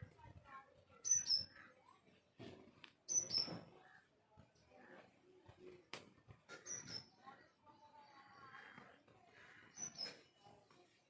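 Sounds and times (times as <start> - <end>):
small bird chirping: 0.9 - 1.7, 3.0 - 3.7, 6.5 - 8.6, 9.7 - 10.6.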